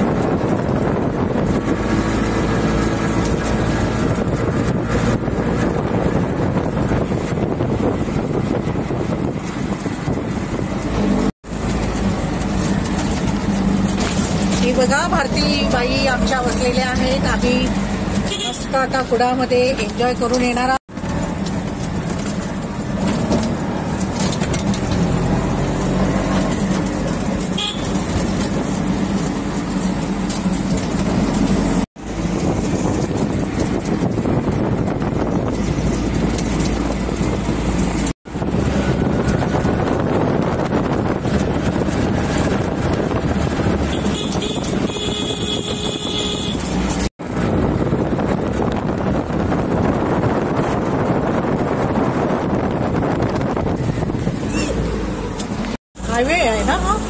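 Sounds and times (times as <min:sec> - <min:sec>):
auto-rickshaw engine droning: 0:00.0 - 0:57.0
road and wind noise: 0:00.0 - 0:57.0
vehicle horn: 0:18.2 - 0:18.8, 0:27.5 - 0:28.1, 0:43.9 - 0:46.8.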